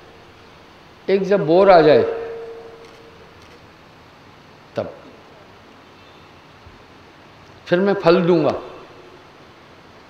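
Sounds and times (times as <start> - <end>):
sound system hum: 0.0 - 3.4
low room hiss: 0.0 - 10.0
man talking over loudspeakers: 1.1 - 2.4, 7.7 - 8.8.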